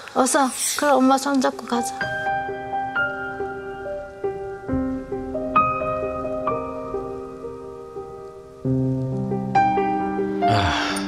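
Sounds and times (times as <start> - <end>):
slow piano music: 0.9 - 11.0.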